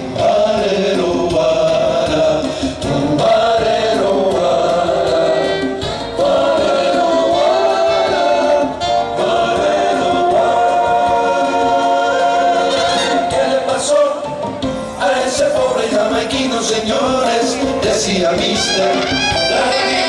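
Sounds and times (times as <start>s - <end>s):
live band music: 0.0s - 20.0s
voices singing in harmony: 0.0s - 20.0s.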